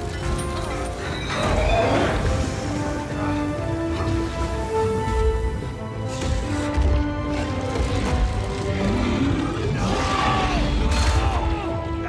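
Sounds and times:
orchestral film score: 0.0s - 12.0s.

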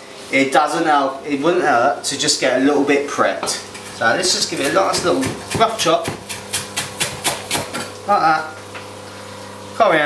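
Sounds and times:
knife chopping on wooden board: 4.3s - 7.9s.

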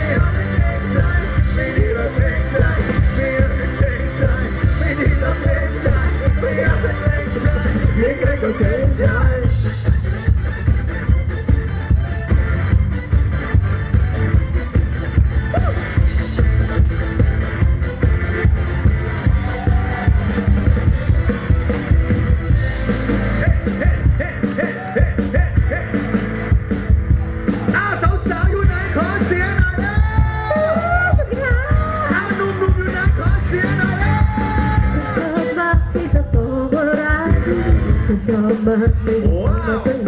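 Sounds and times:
live band playing dance music: 0.0s - 40.0s.

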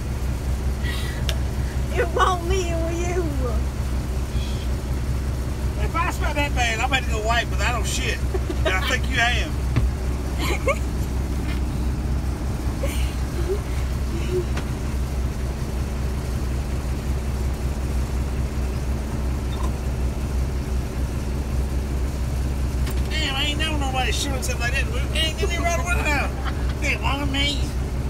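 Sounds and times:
truck diesel engine idling: 0.0s - 28.0s.

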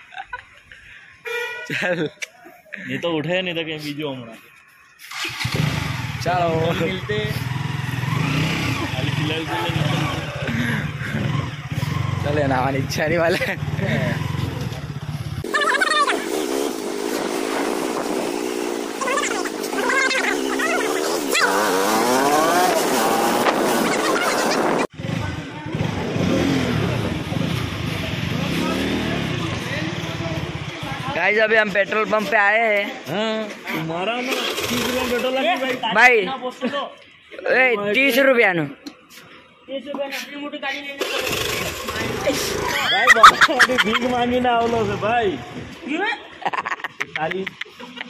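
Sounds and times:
voices talking: 1.7s - 16.8s, 18.8s - 48.0s
motorcycle engine revving: 5.1s - 31.2s, 34.2s - 35.5s, 41.0s - 45.8s
motorcycle engine running at low revs: 7.1s - 15.4s.

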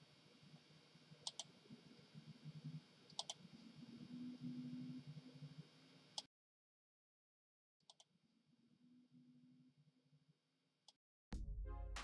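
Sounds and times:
computer mouse clicking: 1.2s - 1.5s, 3.1s - 3.4s.

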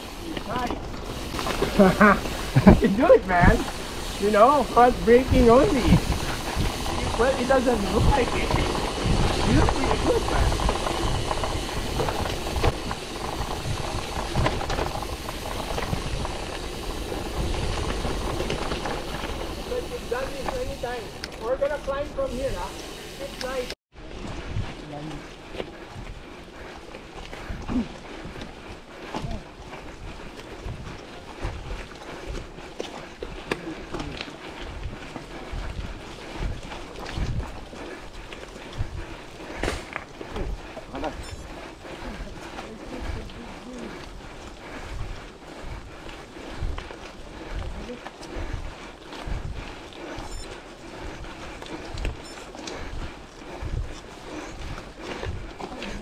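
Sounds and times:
bike tyres rolling over dirt trail: 0.0s - 56.0s
wind rushing over microphone: 2.1s - 21.4s.

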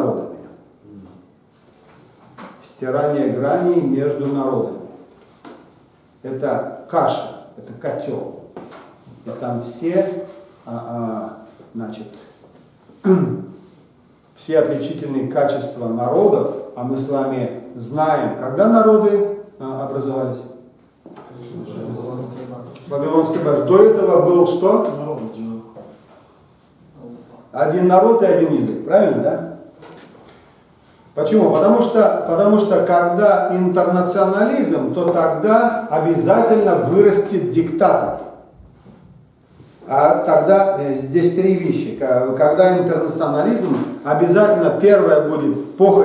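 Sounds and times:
man speaking: 0.0s - 1.3s, 2.5s - 5.0s, 6.2s - 8.6s, 9.2s - 12.4s, 13.0s - 13.6s, 14.4s - 20.6s, 21.2s - 26.0s, 27.0s - 29.7s, 31.1s - 38.5s, 39.8s - 46.0s
lecture speech: 0.0s - 1.4s, 2.4s - 39.0s, 39.7s - 46.0s.

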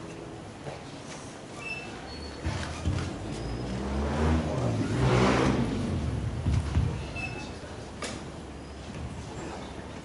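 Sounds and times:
vehicle passing by: 3.4s - 6.7s.

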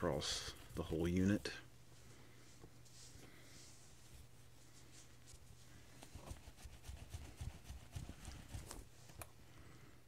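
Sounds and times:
cloth rubbing on metal: 2.8s - 9.1s.

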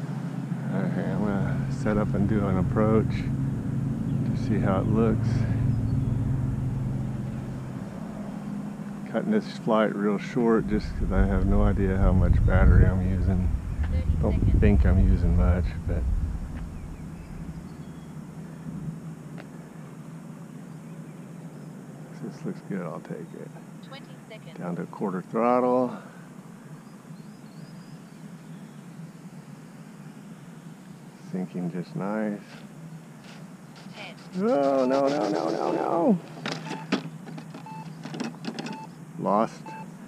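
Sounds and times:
wind rumble on microphone: 10.6s - 19.0s.

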